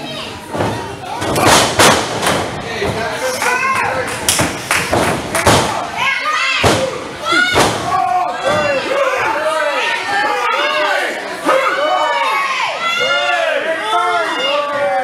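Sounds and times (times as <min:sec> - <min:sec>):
crowd yelling: 0:03.2 - 0:04.1, 0:05.3 - 0:15.0.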